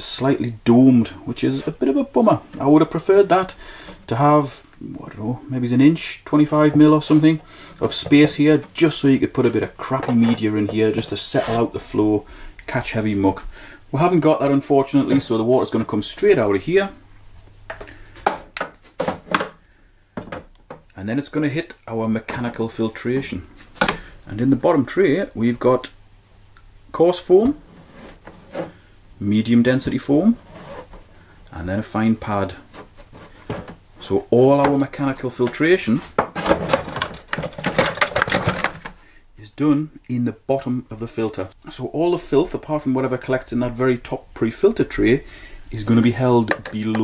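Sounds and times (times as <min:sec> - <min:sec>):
plastic filter tray rustling and clicking: 0:06.5 - 0:11.2, 0:32.7 - 0:33.8, 0:34.6 - 0:39.0
plastic tray knocking and clattering: 0:20.2 - 0:20.8, 0:33.4 - 0:33.8, 0:35.4 - 0:39.0, 0:46.4 - 0:47.0.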